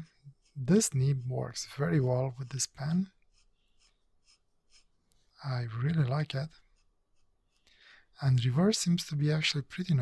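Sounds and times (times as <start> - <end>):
fountain pen scratching paper: 0.4 - 4.9.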